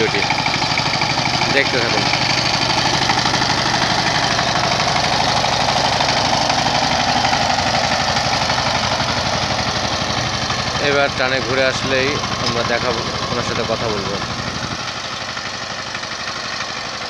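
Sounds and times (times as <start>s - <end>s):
diesel engine chugging: 0.0s - 17.0s
wheels working through flooded field: 0.0s - 17.0s.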